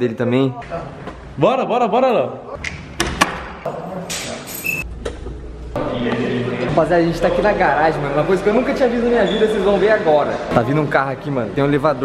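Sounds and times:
people's voices: 0:03.7 - 0:12.0.

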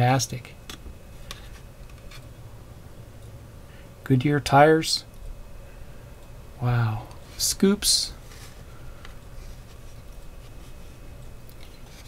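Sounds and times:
faint ticks and handling noise: 0:00.0 - 0:02.4, 0:07.0 - 0:12.0
low background hum: 0:00.0 - 0:12.0.

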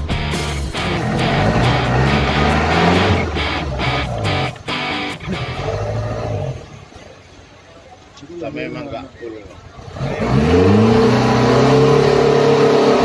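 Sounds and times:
guitar music with regular beat: 0:00.0 - 0:05.6.

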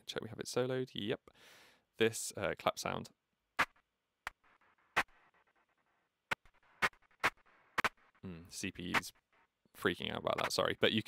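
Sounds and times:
synthesized clap hits: 0:03.6 - 0:08.2, 0:08.9 - 0:09.3, 0:10.3 - 0:10.7.

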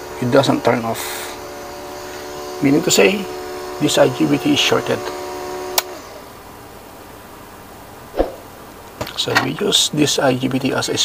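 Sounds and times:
cooling fans and motor whirring: 0:00.0 - 0:11.0.

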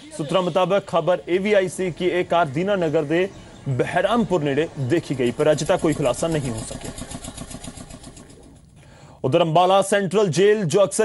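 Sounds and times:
small engine running: 0:05.0 - 0:08.6.

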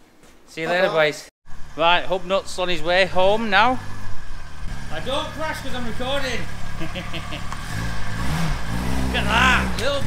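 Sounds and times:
small car engine revving: 0:01.5 - 0:10.0.

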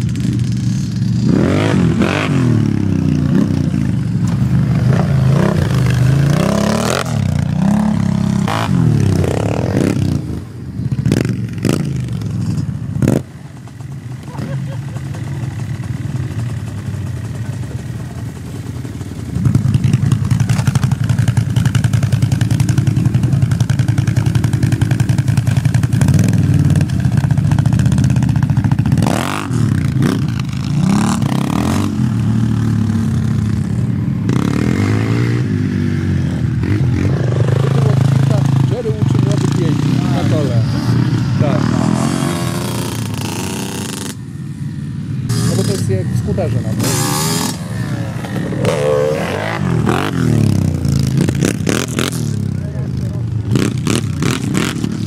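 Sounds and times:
quad engines revving: 0:00.0 - 0:55.0.

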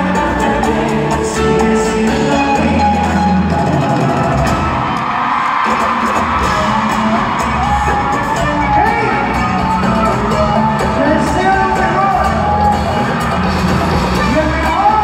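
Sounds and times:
guitar: 0:00.0 - 0:15.0
live band playing: 0:00.0 - 0:15.0
audience whooping and cheering: 0:03.8 - 0:15.0.

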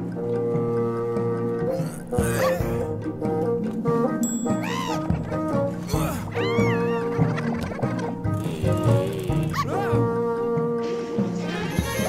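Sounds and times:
cartoon music with held notes: 0:00.0 - 0:12.0
high swooping wordless vocal cries: 0:01.7 - 0:03.0, 0:04.5 - 0:07.4, 0:09.5 - 0:10.1.

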